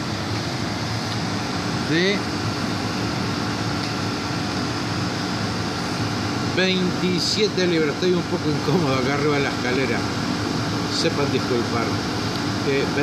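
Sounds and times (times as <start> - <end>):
compressor hum with fan rush: 0.0 - 13.0.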